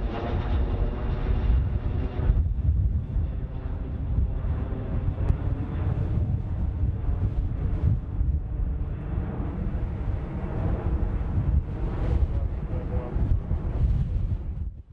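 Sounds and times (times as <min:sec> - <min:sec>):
jet engines rumbling overhead: 0:00.0 - 0:14.9.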